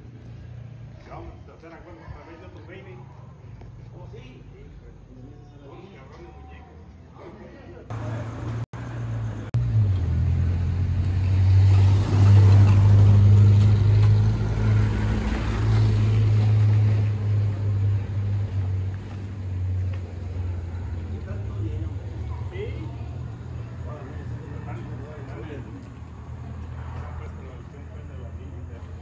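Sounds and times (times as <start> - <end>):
vehicle engine idling: 7.9 - 11.6, 12.2 - 29.0.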